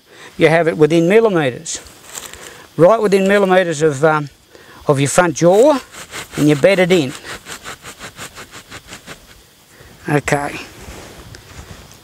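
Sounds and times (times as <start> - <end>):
gloved hands scraping soil: 5.0 - 9.4.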